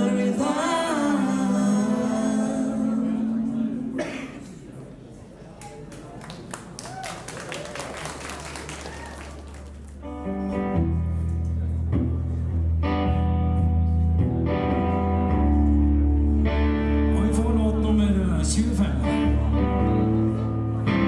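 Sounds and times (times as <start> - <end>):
audience chatter: 0.0 - 21.0
scattered claps: 5.6 - 10.0
electric bass held notes: 9.7 - 21.0.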